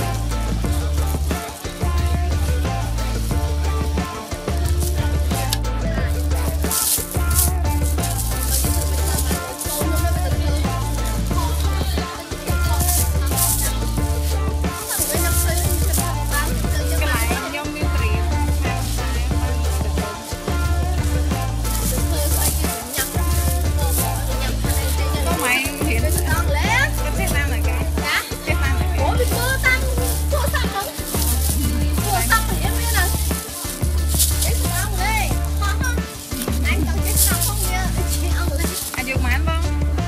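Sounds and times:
music with heavy bass beat: 0:00.0 - 0:40.0.

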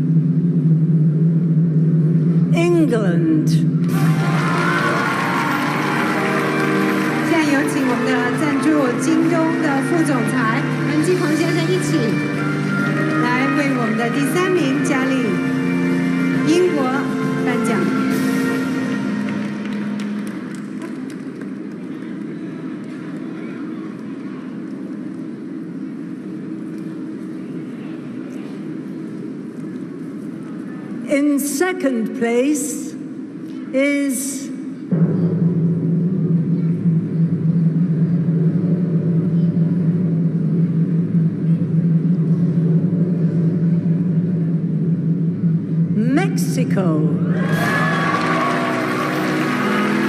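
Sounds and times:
large audience applauding: 0:03.8 - 0:23.3, 0:47.3 - 0:50.0.

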